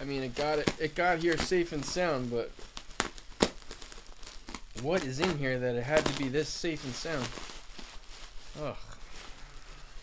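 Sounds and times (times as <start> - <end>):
bubble wrap crinkling: 0.0 - 10.0.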